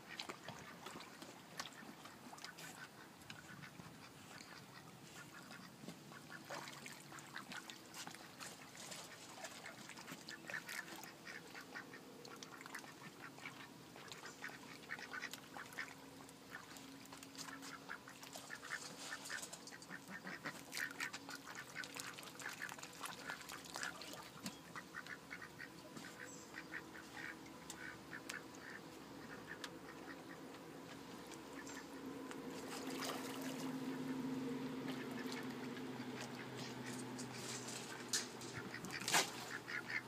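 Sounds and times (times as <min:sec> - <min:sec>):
ducks quacking softly: 0:00.0 - 0:40.0.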